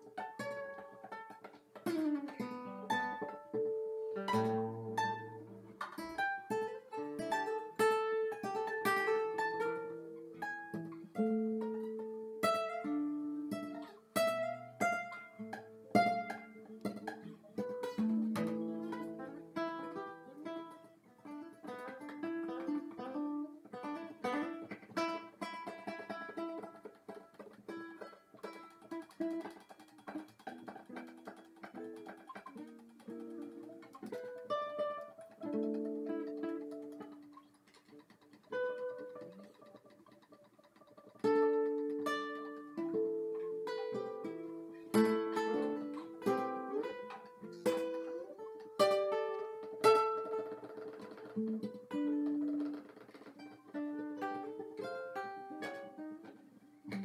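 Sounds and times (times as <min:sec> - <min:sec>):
fingerstyle acoustic guitar: 0:00.0 - 0:57.0.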